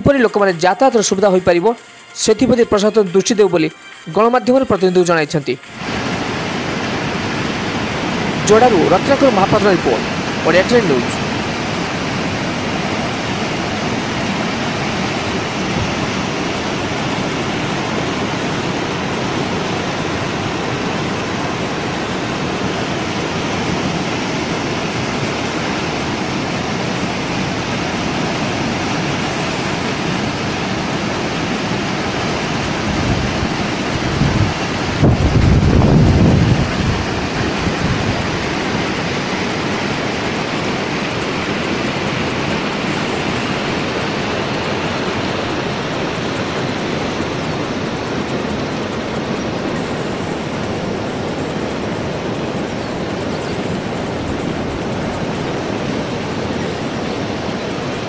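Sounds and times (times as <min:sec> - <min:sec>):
floodwater rushing: 0:00.0 - 0:58.0.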